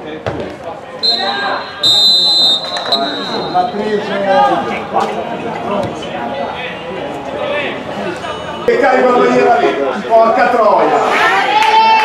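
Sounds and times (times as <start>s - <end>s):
referee's whistle blowing: 1.0s - 3.9s.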